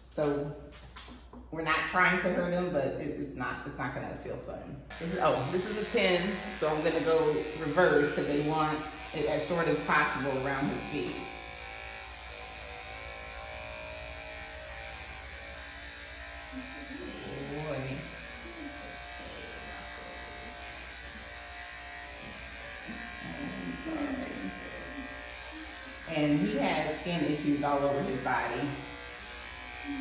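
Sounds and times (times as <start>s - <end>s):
electric clippers humming: 4.9s - 30.0s.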